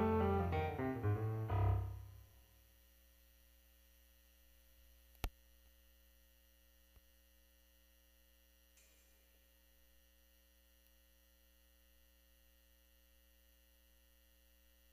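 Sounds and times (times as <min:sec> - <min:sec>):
low electrical hum: 0:00.0 - 0:14.9.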